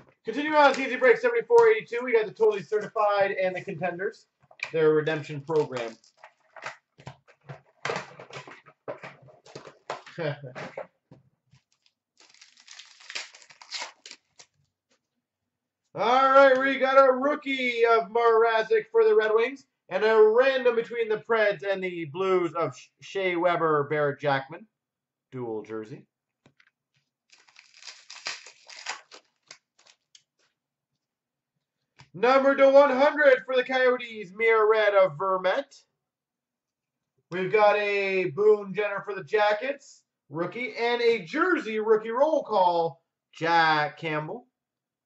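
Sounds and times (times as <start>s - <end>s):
foil wrappers tearing and crinkling: 5.5s - 6.4s, 11.7s - 14.6s, 27.3s - 30.2s.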